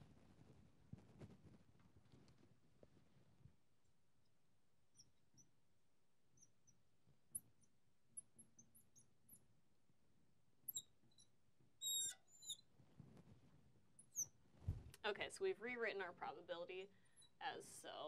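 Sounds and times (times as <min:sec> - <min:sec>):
marker squeaking on glass: 0:10.7 - 0:12.7
soft thump: 0:14.6 - 0:15.0.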